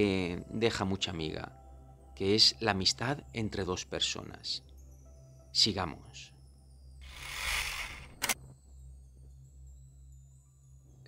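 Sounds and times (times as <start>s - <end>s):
low background music drone: 0.0s - 11.0s
sharp click: 8.0s - 8.4s.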